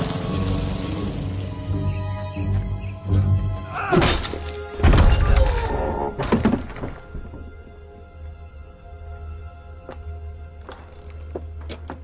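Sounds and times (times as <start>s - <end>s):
music: 0.0s - 12.0s
heavy wooden thunks: 6.1s - 7.7s.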